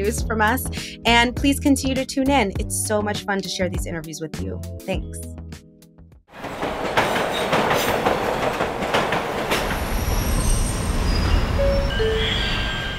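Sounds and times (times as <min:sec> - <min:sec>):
train clattering on rails: 0:06.4 - 0:12.9
wheel squeals: 0:09.5 - 0:12.9.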